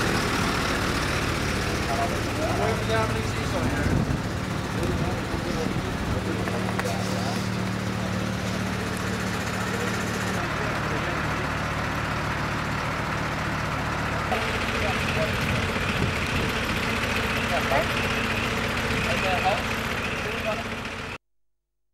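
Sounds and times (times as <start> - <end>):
diesel engine idling: 0.0 - 21.2.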